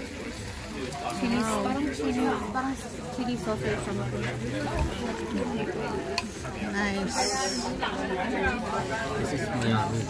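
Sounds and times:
restaurant background noise: 0.0s - 10.0s.

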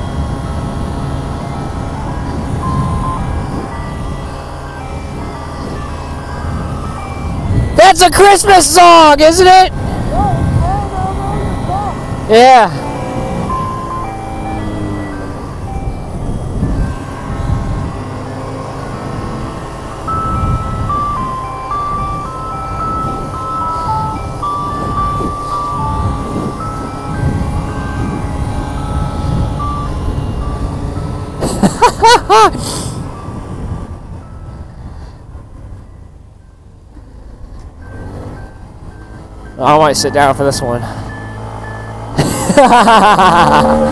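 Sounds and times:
wind rumble: 0.0s - 8.4s, 9.6s - 39.6s
electronic horn beeping a tune: 0.0s - 31.4s
siren wail: 0.0s - 34.7s, 37.8s - 43.9s
motorcycle engine: 0.0s - 43.9s.

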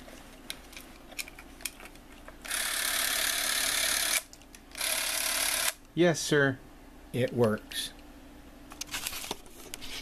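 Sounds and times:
movie camera motor whirring: 2.4s - 5.8s.

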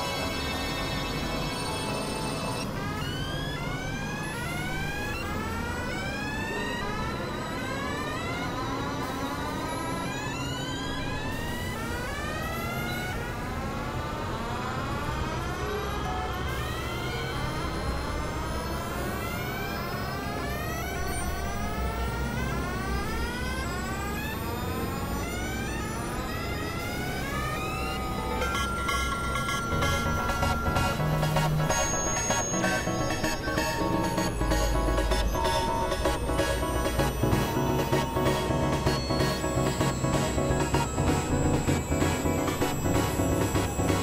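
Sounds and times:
low steady synthesizer drone: 0.0s - 44.0s
tones sweeping upward: 0.0s - 44.0s.

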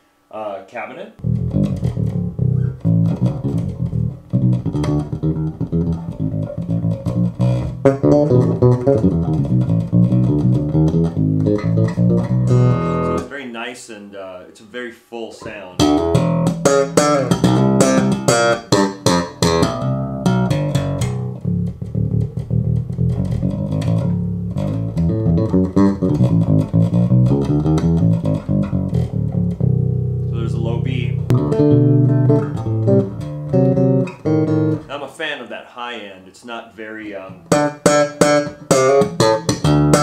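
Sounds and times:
electric bass playing: 1.2s - 13.4s, 15.4s - 35.0s, 37.2s - 40.0s.

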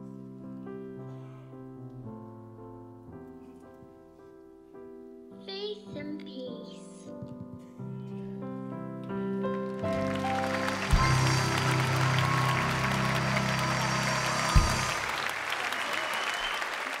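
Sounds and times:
audience applause: 9.5s - 17.0s
live band music: 9.9s - 15.4s.

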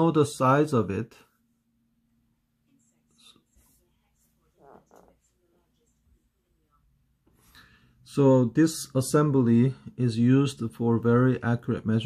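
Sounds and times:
faint low hum: 0.0s - 12.0s
soft breathy noises: 7.2s - 8.1s.

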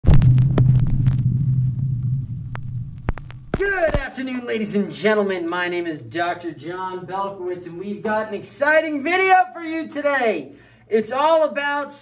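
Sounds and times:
low steady hum: 0.0s - 9.0s
sharp clicks: 2.5s - 4.0s
man speaking: 3.6s - 12.0s.

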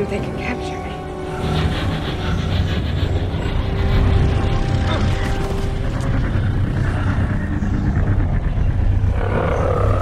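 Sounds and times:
heavy rattling rumble: 0.0s - 10.0s.

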